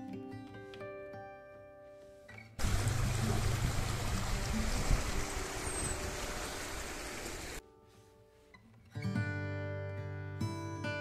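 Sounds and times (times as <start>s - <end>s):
rushing noise with low rumble: 2.6s - 7.6s.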